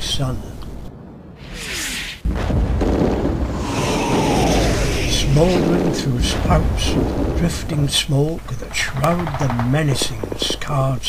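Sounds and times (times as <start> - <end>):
rumble of a barrage: 0.4 - 11.0
explosion: 1.3 - 10.3.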